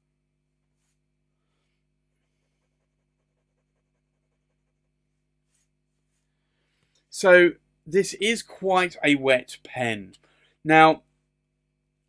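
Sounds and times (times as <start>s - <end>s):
pen nib scratching paper: 2.3s - 5.7s.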